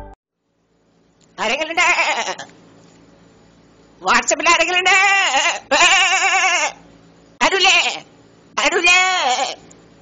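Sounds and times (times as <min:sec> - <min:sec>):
goat bleating: 0:01.4 - 0:02.5, 0:04.4 - 0:06.8, 0:07.4 - 0:09.6.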